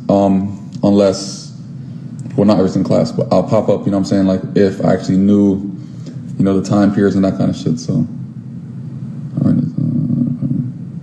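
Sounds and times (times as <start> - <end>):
man's low drawn out voice: 9.3 - 11.0.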